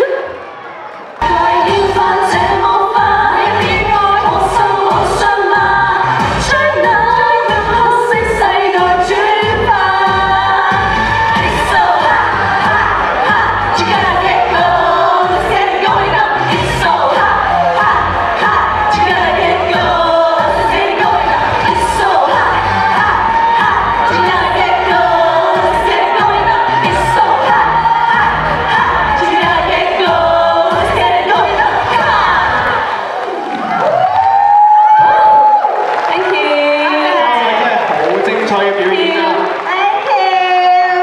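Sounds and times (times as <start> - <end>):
crowd cheering: 0.0 - 41.0
women singing into microphones: 1.2 - 33.1
upbeat dance-pop song: 1.2 - 33.3.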